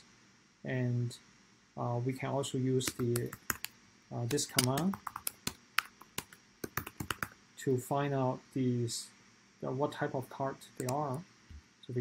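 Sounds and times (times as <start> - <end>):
keyboard typing clicks: 2.9 - 3.7, 4.3 - 7.3.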